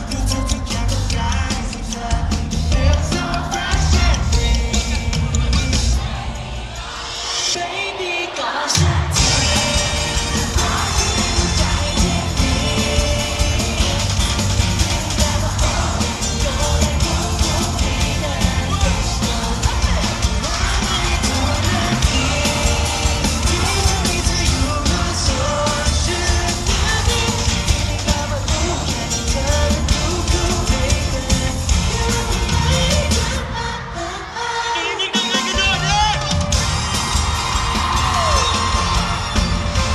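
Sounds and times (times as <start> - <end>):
heavy bass beat: 0.0 - 6.2, 8.8 - 33.4
men singing over dance track: 0.0 - 39.9.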